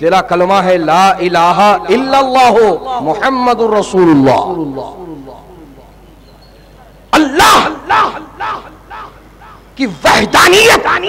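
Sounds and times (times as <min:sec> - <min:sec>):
man preaching amplified with echo: 0:00.0 - 0:05.9, 0:07.2 - 0:09.1, 0:09.8 - 0:11.0.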